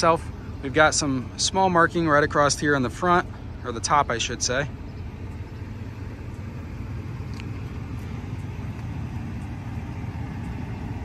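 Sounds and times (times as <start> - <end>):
low vehicle rumble: 0.0 - 11.0.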